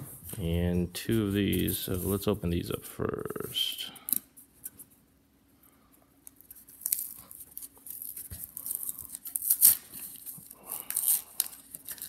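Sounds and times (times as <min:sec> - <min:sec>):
cardboard tearing: 0:06.6 - 0:12.0.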